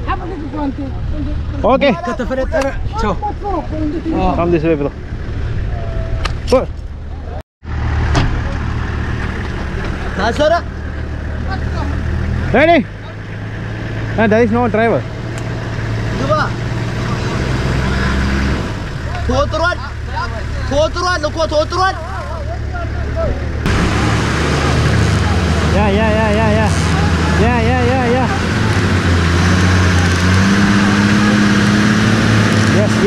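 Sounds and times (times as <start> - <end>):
vehicle engine running: 0.0 - 33.0.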